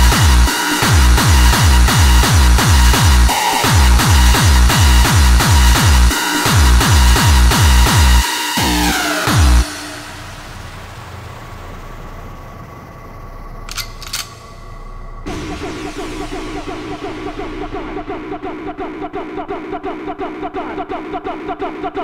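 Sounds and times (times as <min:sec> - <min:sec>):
fast steady kick drum: 0:00.0 - 0:08.2
repeating synth riff: 0:00.0 - 0:12.6
held synth drone: 0:00.0 - 0:13.7, 0:14.4 - 0:19.5
sharp hits: 0:08.8 - 0:18.8.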